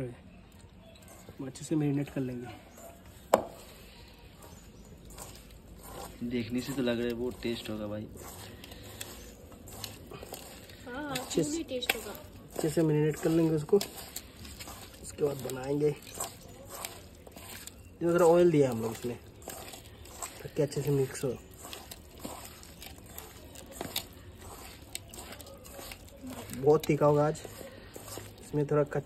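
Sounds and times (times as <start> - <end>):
hand squishing wet food: 0.4 - 29.0.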